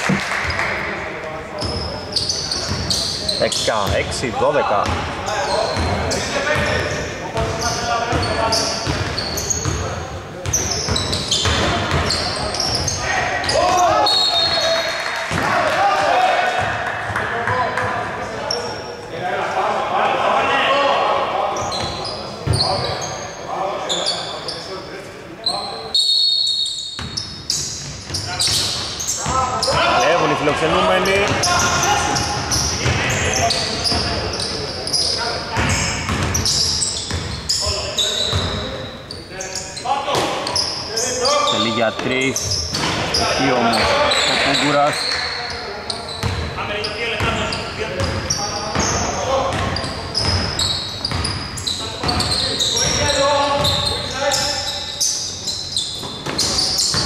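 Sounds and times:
players calling out: 0:00.0 - 0:24.6, 0:25.4 - 0:57.0.

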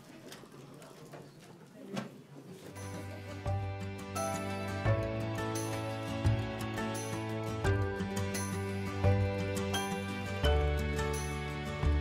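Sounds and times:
faint indistinct voices: 0:00.0 - 0:04.5.

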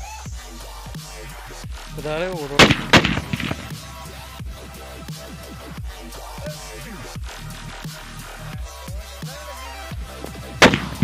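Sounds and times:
electronic dubstep music: 0:00.0 - 0:11.0
firecracker bang: 0:02.6 - 0:04.1, 0:10.6 - 0:11.0.

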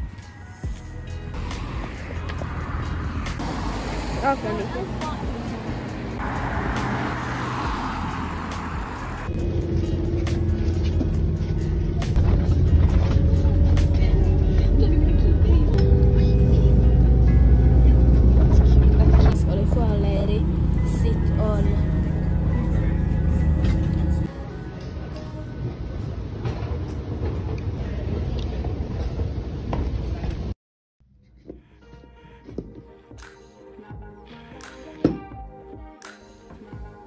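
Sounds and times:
background music: 0:00.0 - 0:26.3, 0:31.5 - 0:37.0
hissy street noise: 0:00.6 - 0:11.7
vehicle interior rumble: 0:01.1 - 0:24.4.

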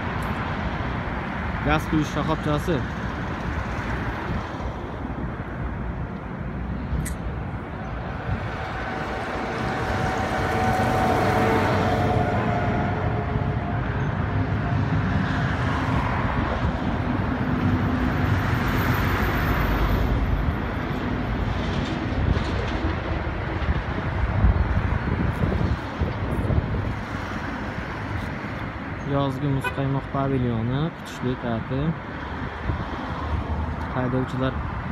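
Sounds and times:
motor vehicle rumble: 0:00.0 - 0:34.9.

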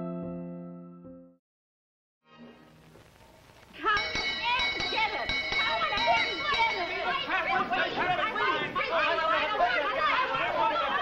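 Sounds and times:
people talking over one another: 0:03.8 - 0:11.0.

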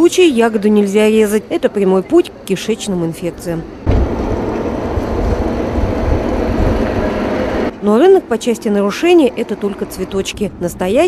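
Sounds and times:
highway traffic rumble: 0:00.0 - 0:11.0.

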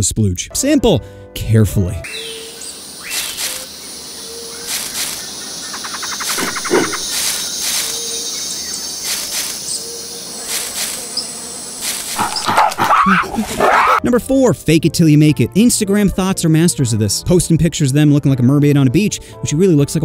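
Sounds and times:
chorus of insects: 0:02.1 - 0:13.4
animal and bird calls: 0:02.1 - 0:14.0
quick rattling call: 0:03.0 - 0:03.8, 0:04.5 - 0:08.3.

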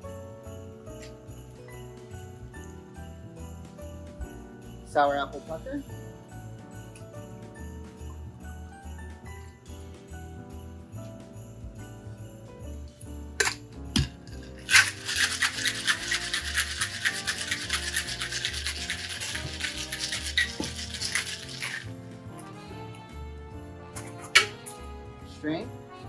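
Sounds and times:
shaker tin knocking on glass: 0:13.4 - 0:21.8
ice rattling in cocktail shaker: 0:13.4 - 0:22.0.

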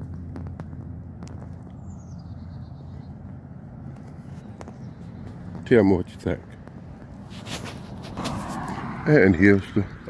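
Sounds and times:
low rumble: 0:06.5 - 0:10.0.

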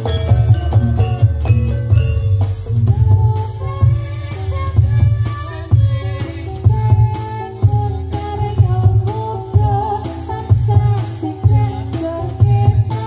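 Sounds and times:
low drum beat: 0:00.0 - 0:13.0
pitched metal percussion melody: 0:00.0 - 0:13.0.

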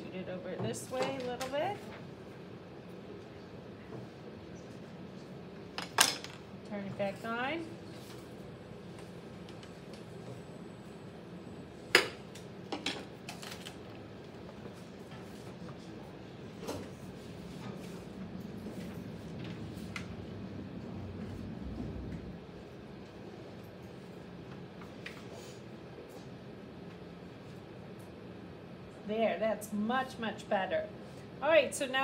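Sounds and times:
pottery wheel humming: 0:00.0 - 0:32.0.

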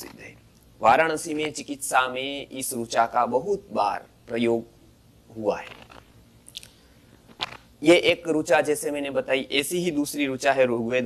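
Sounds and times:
man speaking: 0:00.0 - 0:04.7, 0:05.3 - 0:05.9, 0:07.8 - 0:11.0
lip smack: 0:05.8 - 0:07.7.

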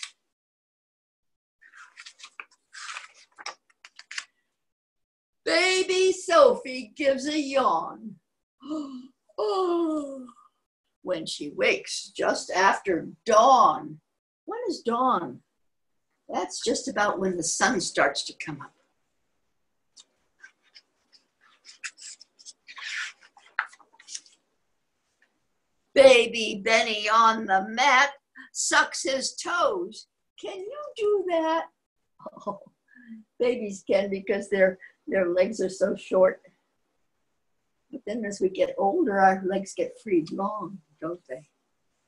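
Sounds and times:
book pages rustling: 0:01.6 - 0:04.5, 0:20.0 - 0:24.5
small clicks from book: 0:01.8 - 0:04.4.

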